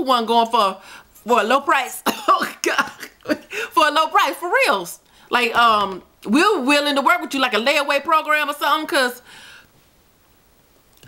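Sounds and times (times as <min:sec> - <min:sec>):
woman talking: 0:00.0 - 0:09.2
woman laughing breathily: 0:02.9 - 0:03.7.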